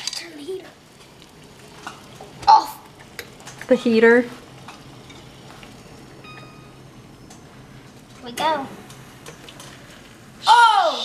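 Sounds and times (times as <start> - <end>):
hot water hissing in saucepan: 0.3 - 6.2.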